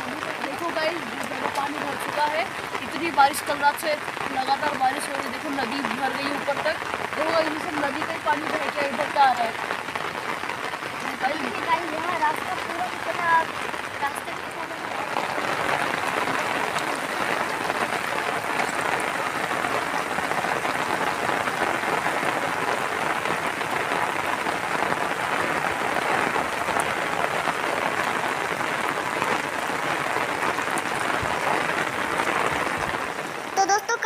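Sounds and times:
heavy rain falling: 0.0s - 34.0s.

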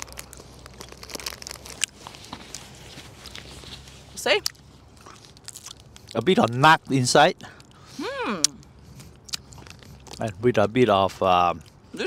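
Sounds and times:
wrapper crinkling: 0.0s - 4.2s, 4.9s - 7.0s.

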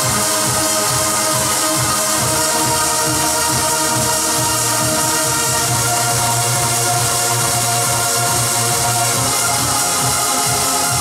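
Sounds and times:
electronic trance music on keyboard: 0.0s - 11.0s.

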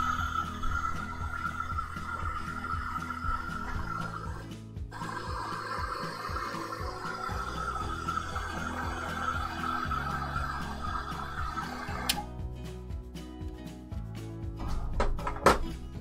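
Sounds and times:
background music with bass line: 0.0s - 16.0s
hair dryer blowing: 5.0s - 12.2s.

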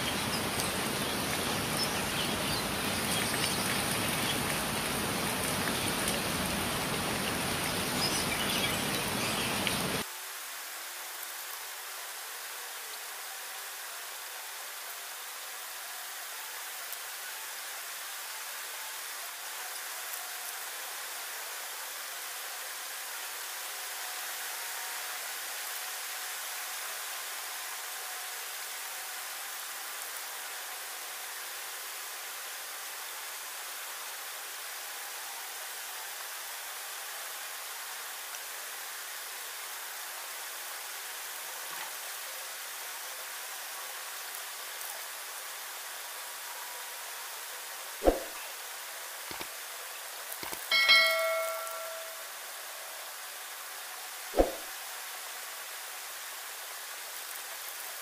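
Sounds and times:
rain falling: 0.0s - 58.0s.

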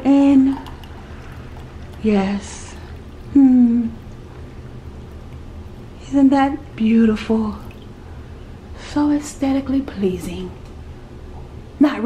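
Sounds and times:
hot water pouring into glass mug: 0.1s - 6.0s, 7.3s - 8.1s.

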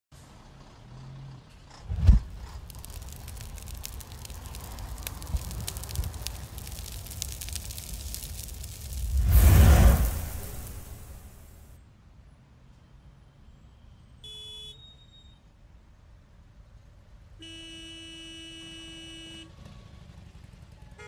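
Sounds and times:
loud rushing: 1.9s - 11.7s
faint clicks: 2.1s - 11.5s.

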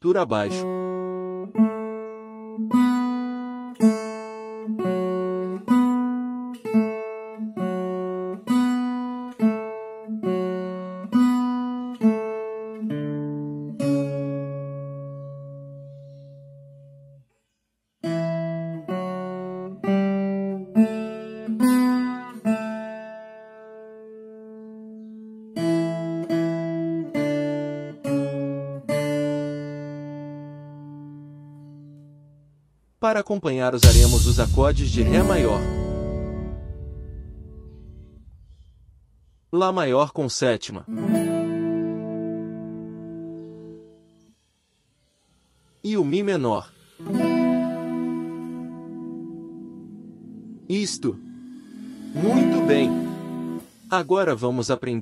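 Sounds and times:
guitar picking slow melody: 0.6s - 17.2s, 18.0s - 32.6s, 33.8s - 38.7s, 40.9s - 44.3s, 46.8s - 54.4s.

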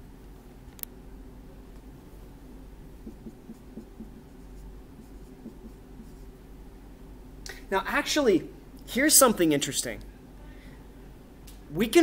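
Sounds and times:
marker writing on whiteboard: 3.0s - 6.4s.

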